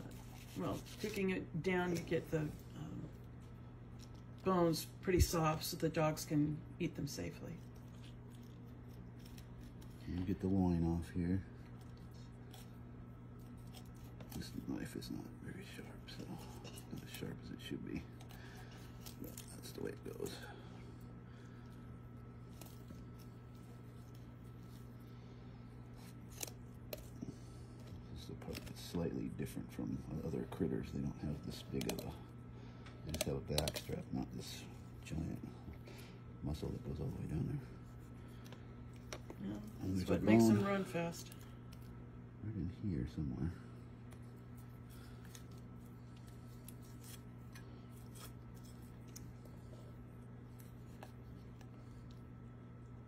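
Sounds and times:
steady low hum: 0.0 - 53.0.

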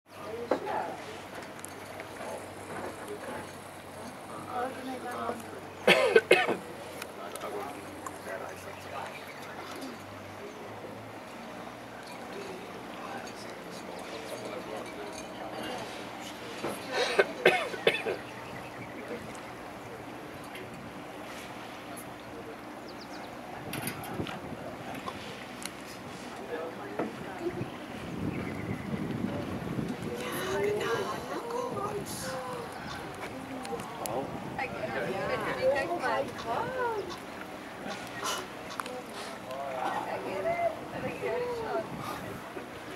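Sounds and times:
boat engine humming: 0.1 - 42.9
faint voices: 0.1 - 42.9
rushing water: 0.1 - 42.9
wind noise: 23.6 - 25.3, 27.1 - 37.0, 40.5 - 42.9.

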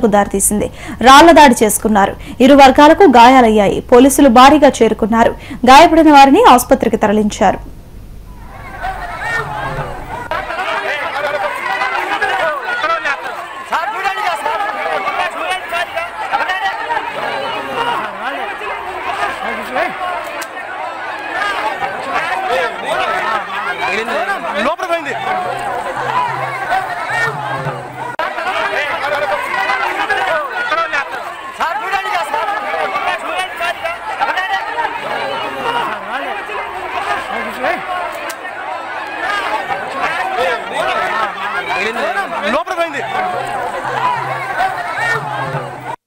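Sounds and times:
crowd of men shouting: 8.4 - 46.0.

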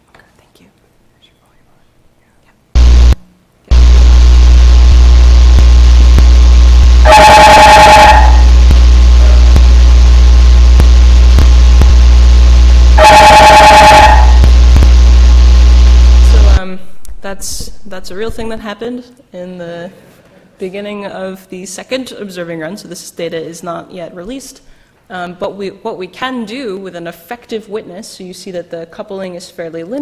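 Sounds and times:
loud steady hum: 2.7 - 18.6
bursts of ringing tones: 2.8 - 11.2, 12.6 - 14.4.

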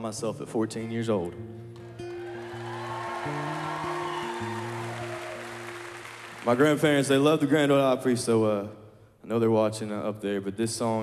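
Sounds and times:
audience applauding: 2.0 - 7.8.

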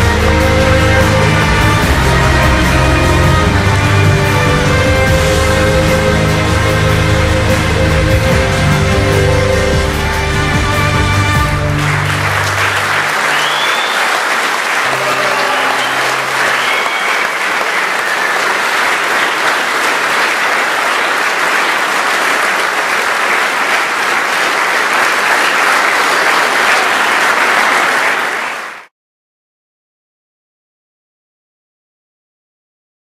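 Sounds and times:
music ending: 0.0 - 13.7, 14.8 - 18.3
large audience applauding: 0.0 - 28.9.

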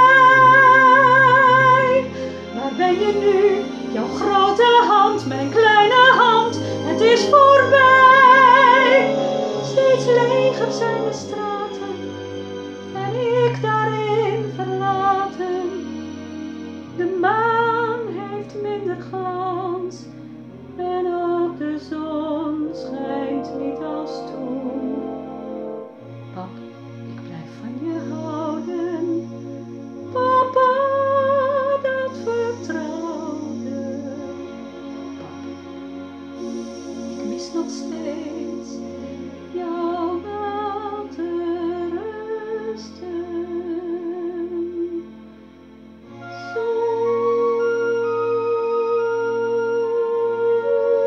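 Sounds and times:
woman singing with vibrato: 0.0 - 12.2, 12.8 - 15.9, 16.9 - 20.1, 20.7 - 25.6, 27.2 - 35.5, 36.5 - 45.1, 46.3 - 51.0
backing accompaniment: 0.0 - 51.0.

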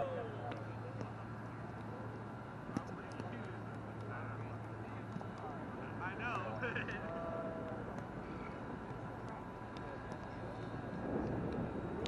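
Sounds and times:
faint distant voices: 0.0 - 12.0
steady low rumble: 0.0 - 12.0.

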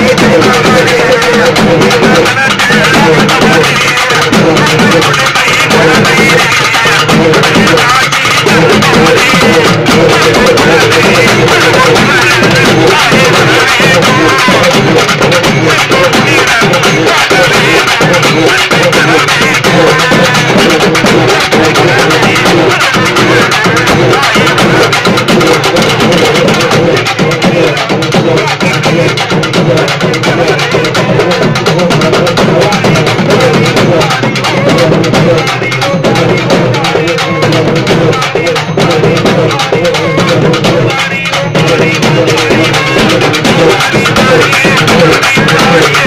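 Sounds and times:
drum ensemble playing fast rhythm: 0.0 - 46.0.

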